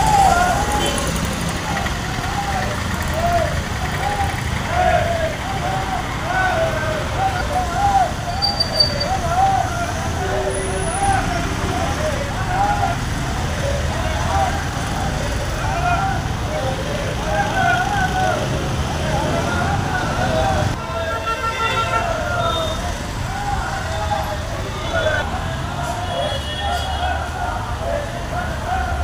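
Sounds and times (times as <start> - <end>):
people calling out: 0.0 - 29.0
street traffic rumble: 0.0 - 29.0.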